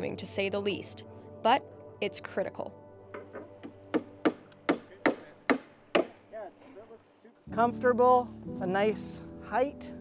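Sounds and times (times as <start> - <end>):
hammer striking wooden boards: 3.2 - 6.2.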